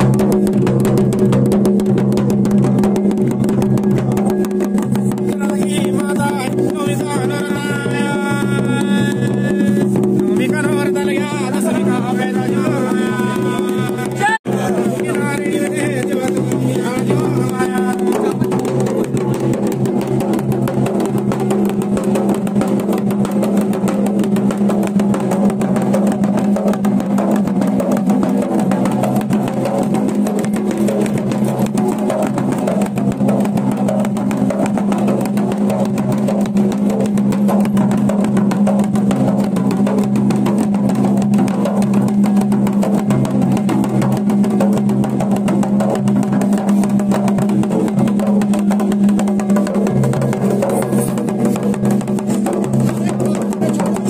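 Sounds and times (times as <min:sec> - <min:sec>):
drum beaten rapidly: 0:00.0 - 0:54.0.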